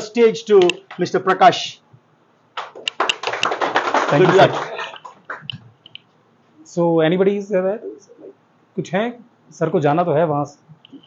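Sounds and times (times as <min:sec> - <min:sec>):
audience clapping: 0:00.8 - 0:01.5, 0:02.6 - 0:05.6.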